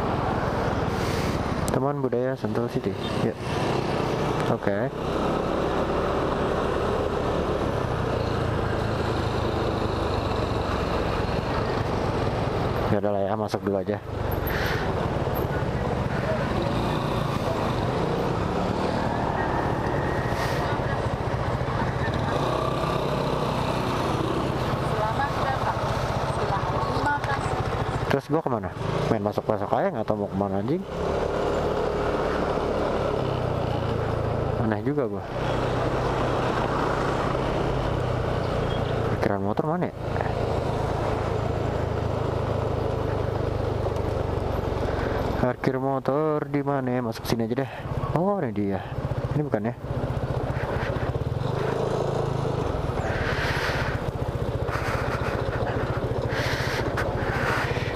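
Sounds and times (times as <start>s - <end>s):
motorcycle engine running: 0.0s - 46.8s, 47.4s - 57.9s
wind and road noise: 0.0s - 57.9s
scooter engine idling: 19.4s - 28.2s, 47.7s - 57.9s.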